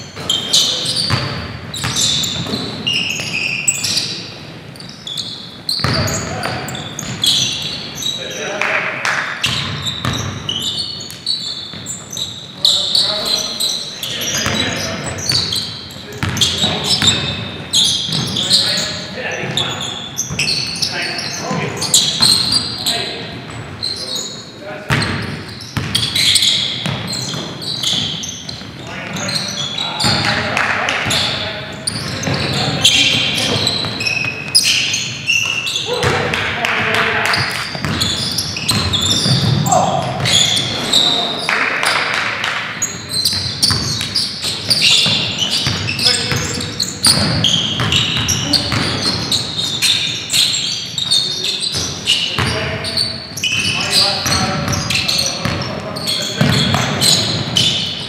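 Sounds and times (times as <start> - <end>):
players calling out: 9.5 - 58.0
basketball bouncing on hardwood floor: 25.8 - 26.1, 35.4 - 40.4, 56.4 - 57.4.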